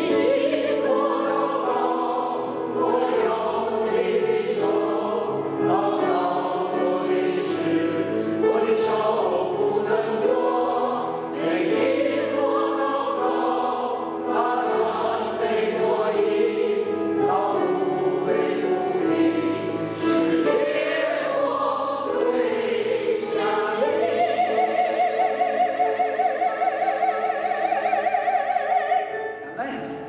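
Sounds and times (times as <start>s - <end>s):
group singing a hymn: 0.0s - 28.9s.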